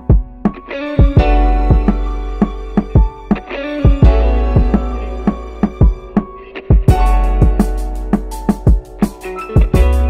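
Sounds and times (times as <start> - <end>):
drum hits: 0.0 - 10.0
synth or guitar chords: 0.0 - 10.0
heavy bass: 3.8 - 6.2, 6.8 - 9.0, 9.6 - 10.0.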